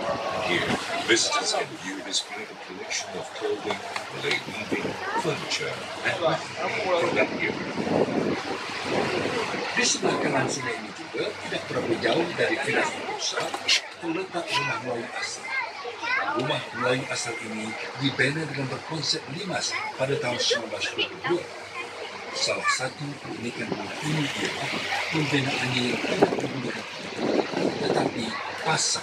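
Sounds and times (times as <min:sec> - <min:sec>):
boat motor: 0:00.0 - 0:29.0
people chattering: 0:00.0 - 0:29.0
water noise: 0:00.0 - 0:29.0
wind buffeting microphone: 0:04.2 - 0:10.7, 0:23.2 - 0:29.0.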